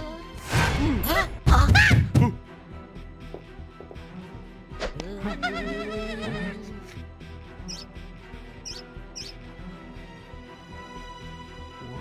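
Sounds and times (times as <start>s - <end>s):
soft background music: 0.0s - 12.0s
high squeaks: 8.7s - 9.3s.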